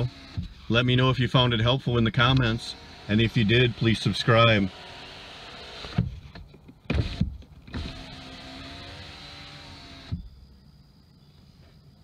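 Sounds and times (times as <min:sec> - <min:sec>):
power window motor running: 0:00.0 - 0:10.3.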